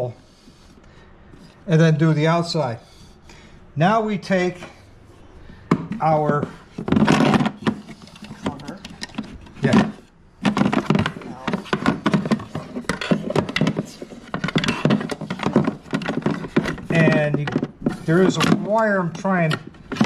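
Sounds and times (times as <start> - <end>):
plastic parts clicking and knocking: 5.6 - 20.0.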